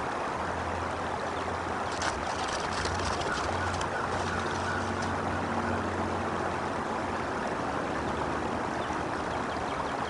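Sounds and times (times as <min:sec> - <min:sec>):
stream water rushing: 0:00.0 - 0:10.0
faint crackles of nest sticks: 0:01.8 - 0:05.2.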